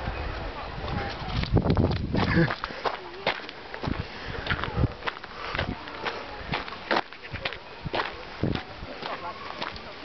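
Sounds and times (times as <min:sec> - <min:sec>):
footsteps on gravel: 0:01.2 - 0:09.9.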